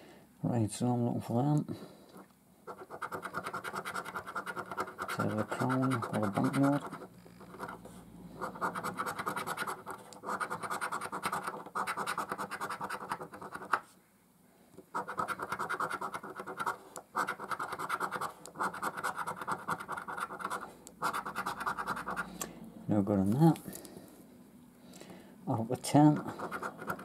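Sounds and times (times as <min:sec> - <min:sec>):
coin scraping a scratchcard: 0:02.7 - 0:07.8, 0:08.4 - 0:13.8, 0:14.9 - 0:22.3, 0:26.1 - 0:27.0.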